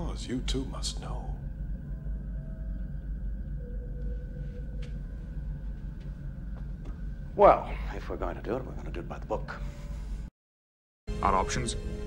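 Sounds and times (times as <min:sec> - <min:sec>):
low rumble with high hum: 0:00.0 - 0:10.3.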